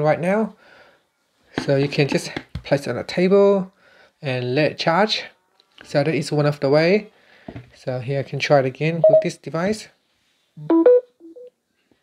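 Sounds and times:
phone charging chime rising beeps: 0:09.0 - 0:09.3, 0:10.6 - 0:11.5.

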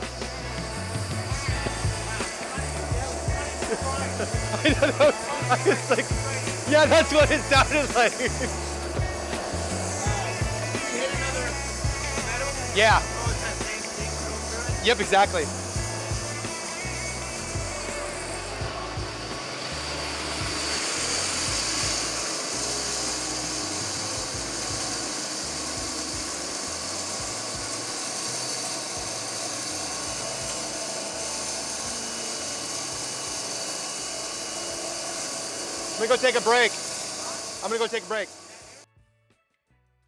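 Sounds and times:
band saw cutting log: 0:00.0 - 0:38.8.

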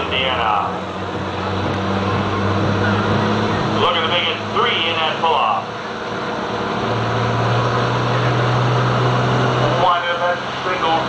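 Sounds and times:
diesel truck engine running: 0:00.0 - 0:11.0.

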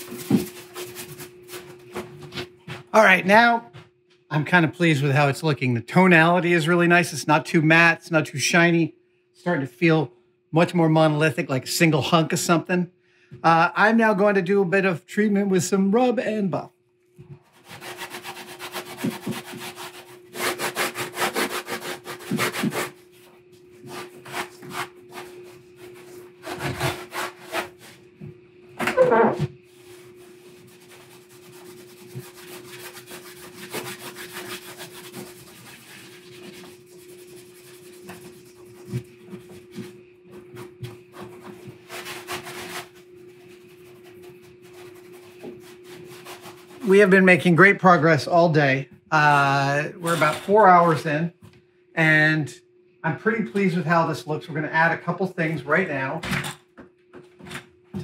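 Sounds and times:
faint steady hum: 0:00.0 - 0:58.0
cloth rag rubbing painted surface: 0:29.7 - 0:40.0.

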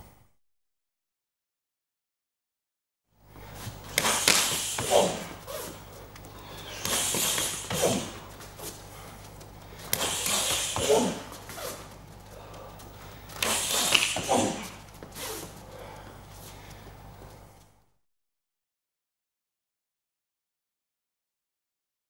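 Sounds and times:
low electrical hum: 0:00.0 - 0:00.3, 0:03.2 - 0:17.9
shuffling and slaps on mat: 0:03.4 - 0:17.6
hissing breaths and grunts: 0:03.6 - 0:16.2.

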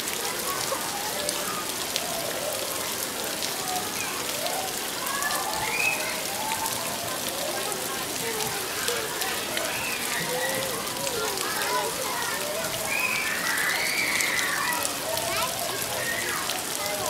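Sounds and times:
faint indistinct voices: 0:00.0 - 0:17.0
steady rain falling: 0:00.0 - 0:17.0.

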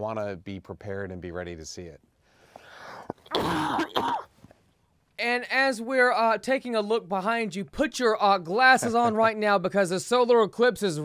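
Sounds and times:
man drawing breath: 0:02.2 - 0:03.2
man coughing into hands: 0:03.3 - 0:04.3.

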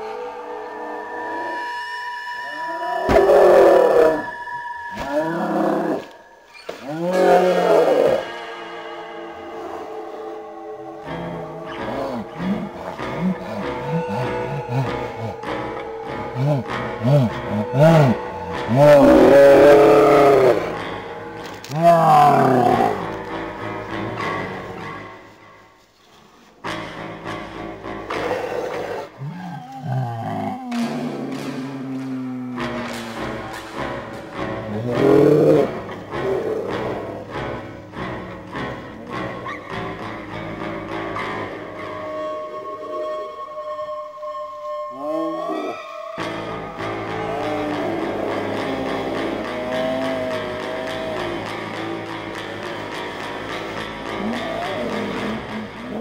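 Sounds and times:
deep voice roaring: 0:11.0 - 0:20.8, 0:21.7 - 0:23.3.

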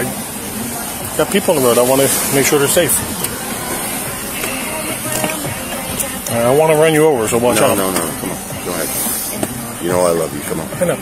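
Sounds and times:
faint voices: 0:00.0 - 0:11.0
steady background hiss: 0:00.0 - 0:11.0.

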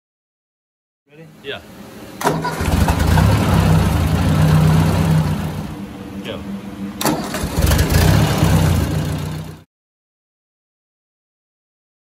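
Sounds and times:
tractor engine running: 0:02.2 - 0:06.0, 0:07.0 - 0:09.6.

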